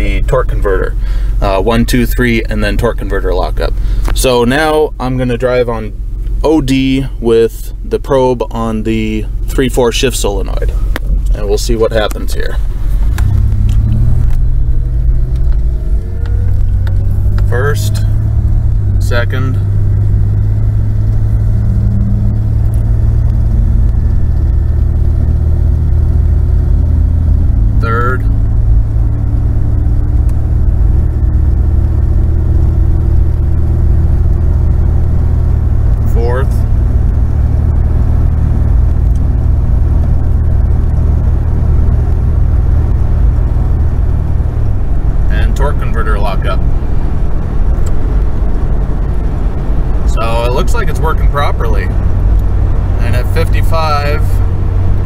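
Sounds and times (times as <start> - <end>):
car engine accelerating: 0.0 - 55.0
road noise: 0.0 - 55.0.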